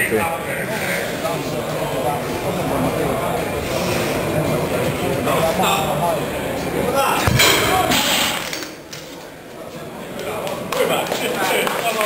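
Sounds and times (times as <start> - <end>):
weight plates thudding on floor: 7.2 - 8.5.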